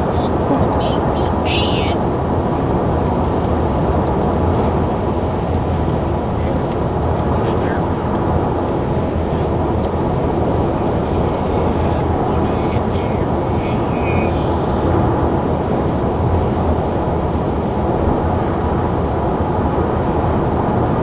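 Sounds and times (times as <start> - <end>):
car road and engine noise: 0.0 - 21.0.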